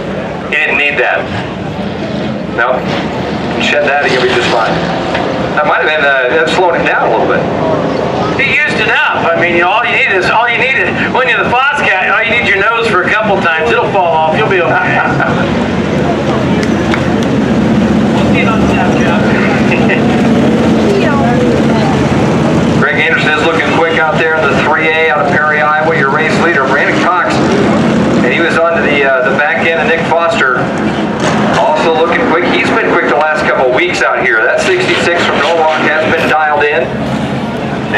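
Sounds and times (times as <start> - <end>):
race car engines droning: 0.0 - 37.9
man talking: 0.5 - 1.4, 2.6 - 2.9, 3.6 - 4.8, 5.6 - 7.5, 8.3 - 15.5, 18.2 - 20.4, 22.7 - 30.7, 31.6 - 36.9.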